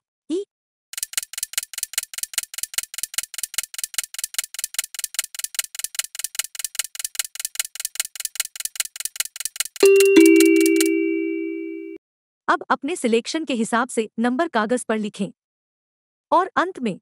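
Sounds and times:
rapid clock-like ticks: 0:01.0 - 0:10.9
ding-dong chime: 0:09.8 - 0:12.0.

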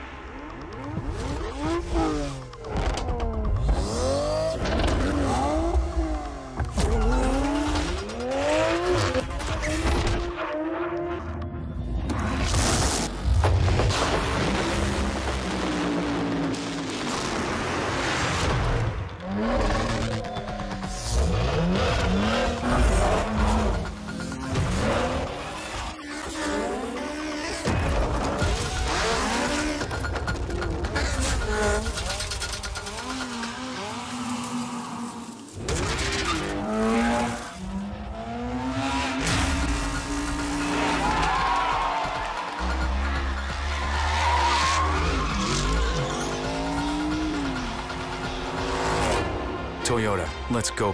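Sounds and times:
tyres squealing and skidding: 0:38.7 - 0:49.1.

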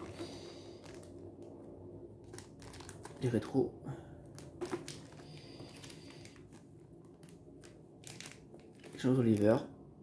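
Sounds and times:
plastic bag crinkling: 0:00.0 - 0:01.5, 0:02.2 - 0:03.6, 0:04.2 - 0:09.6.

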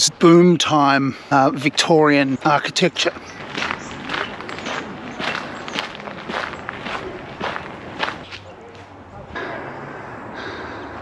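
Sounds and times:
footsteps on gravel path: 0:01.5 - 0:09.0.

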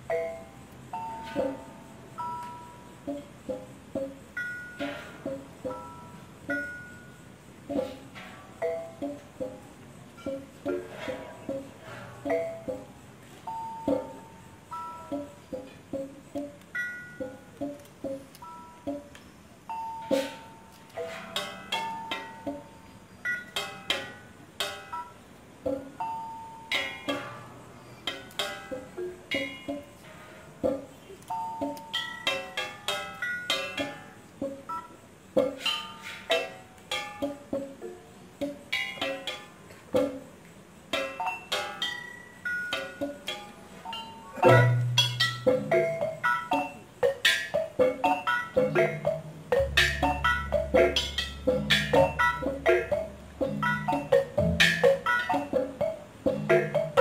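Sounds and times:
gamelan music: 0:00.0 - 0:08.0, 0:08.6 - 0:19.2, 0:20.0 - 0:22.8, 0:25.7 - 0:34.8, 0:35.4 - 0:40.3, 0:40.9 - 0:57.0.

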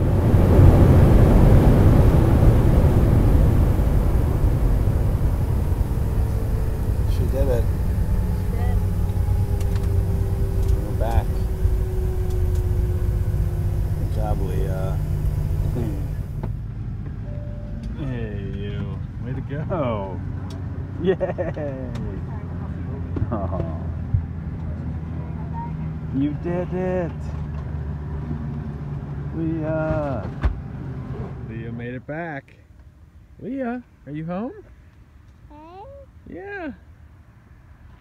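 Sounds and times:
airliner engine drone: 0:00.0 - 0:16.7.

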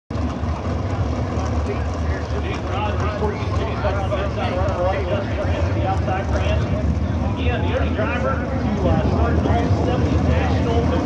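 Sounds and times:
steady low rumble: 0:00.1 - 0:11.0
indistinct talking: 0:00.4 - 0:11.0.

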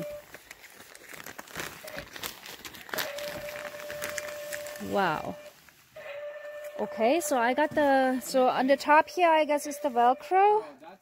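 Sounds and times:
mesh screen rustling and crinkling: 0:00.0 - 0:09.0.

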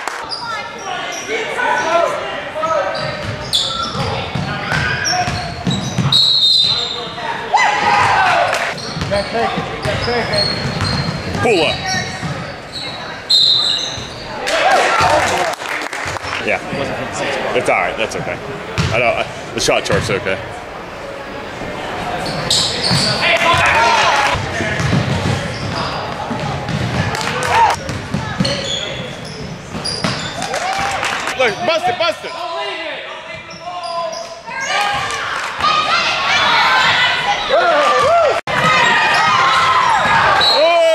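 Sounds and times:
voices shouting in a gym: 0:00.0 - 0:15.5, 0:21.9 - 0:40.9
sneakers squeaking: 0:00.1 - 0:15.2, 0:18.6 - 0:19.0, 0:21.2 - 0:32.6, 0:33.2 - 0:40.9
referee's whistle blast: 0:06.1 - 0:07.0
basketball bouncing on hardwood: 0:24.8 - 0:27.2.

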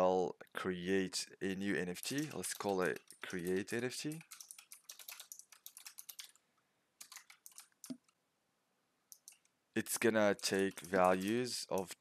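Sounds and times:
computer keyboard typing: 0:01.9 - 0:06.4, 0:07.0 - 0:08.2, 0:09.1 - 0:09.5, 0:10.2 - 0:12.0.

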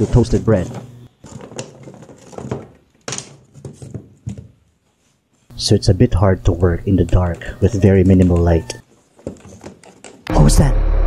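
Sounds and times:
knocks and scrapes on wood: 0:00.0 - 0:04.6.

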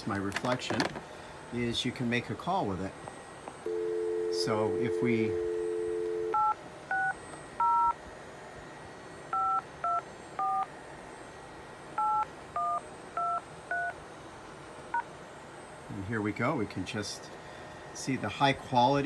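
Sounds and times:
phone dial tone: 0:03.7 - 0:07.9.

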